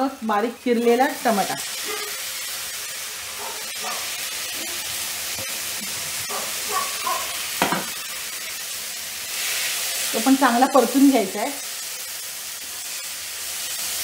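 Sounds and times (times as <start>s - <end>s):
tomatoes sizzling in hot oil: 0.0s - 14.0s
spatula knocking against pan: 7.6s - 7.9s.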